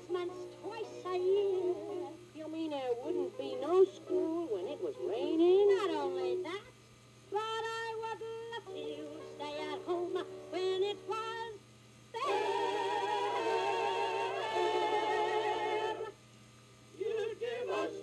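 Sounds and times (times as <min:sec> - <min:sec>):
person singing on a record: 0:00.0 - 0:06.7, 0:07.3 - 0:11.6, 0:12.2 - 0:16.2, 0:16.9 - 0:18.0.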